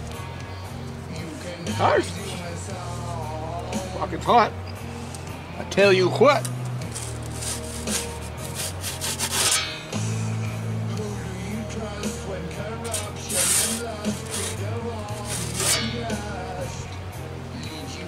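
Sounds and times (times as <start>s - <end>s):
background music: 0.0s - 18.0s
metal peel scraping under pizza: 6.8s - 9.9s, 12.8s - 16.2s.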